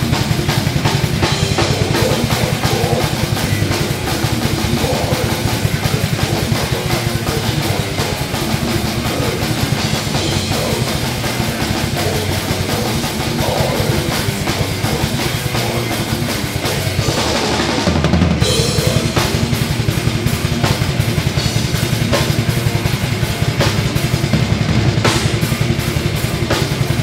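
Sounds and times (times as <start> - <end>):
electric guitars: 0.0 - 27.0
fast drum kit: 0.0 - 27.0.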